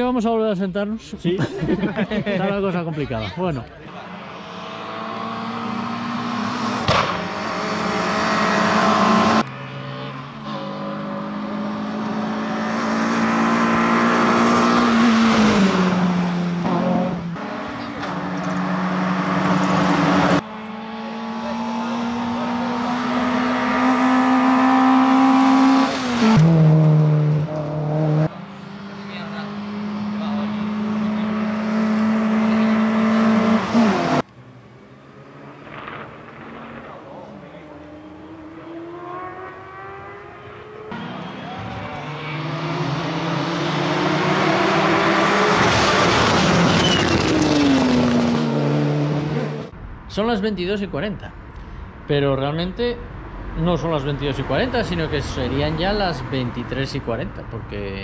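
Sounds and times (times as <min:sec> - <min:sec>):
race car engines at full throttle: 0:03.7 - 0:50.1, 0:51.2 - 0:58.0.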